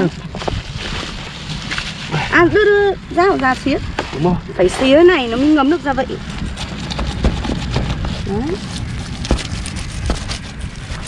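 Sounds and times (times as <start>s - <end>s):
knife cutting through fish scales: 6.3s - 11.0s.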